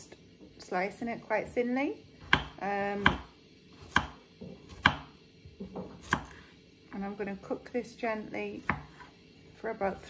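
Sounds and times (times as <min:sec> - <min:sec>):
knife strikes on wooden board: 0:02.2 - 0:03.3, 0:03.9 - 0:05.1.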